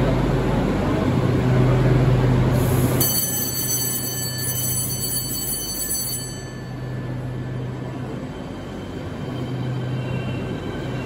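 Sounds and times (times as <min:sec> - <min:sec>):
train rumble and low hum: 0:00.0 - 0:11.0.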